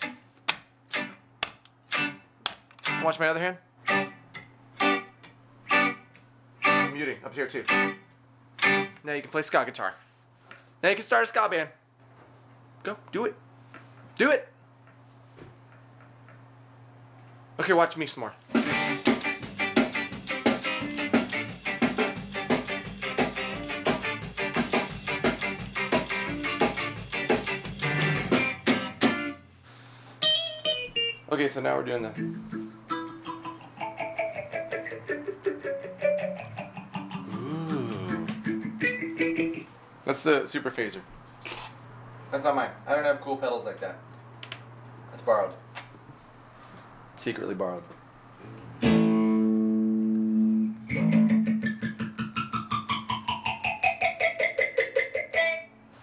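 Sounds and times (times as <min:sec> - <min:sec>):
muted electric guitar chord strums: 0:03.8 - 0:08.0, 0:08.6 - 0:09.0, 0:18.6 - 0:29.4, 0:30.2 - 0:39.7, 0:48.8 - 0:55.7
single guitar notes: 0:32.1 - 0:39.6, 0:48.8 - 0:53.4.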